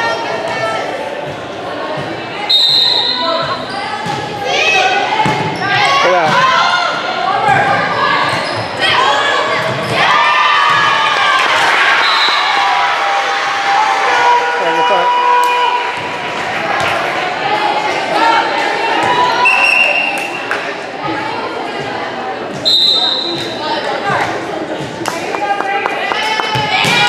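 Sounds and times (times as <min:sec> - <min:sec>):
players and spectators shouting: 0:02.8 - 0:20.1, 0:25.3 - 0:27.0
volleyball being struck: 0:25.1 - 0:27.0.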